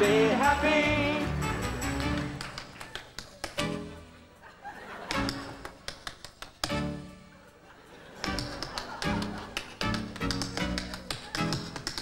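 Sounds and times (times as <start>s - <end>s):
tap shoes tapping on stage: 1.9s - 3.6s, 5.1s - 6.9s, 8.2s - 12.0s.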